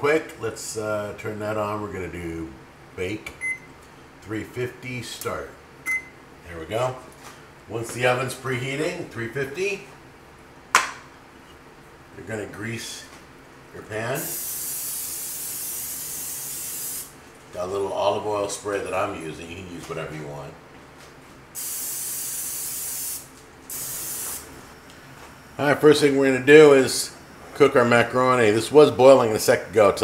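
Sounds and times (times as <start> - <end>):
cooking spray hissing: 14.2 - 17.2, 21.5 - 24.6.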